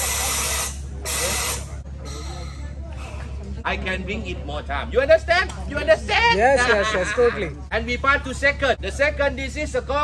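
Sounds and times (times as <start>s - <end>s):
air hissing from regulator: 0.0s - 2.2s.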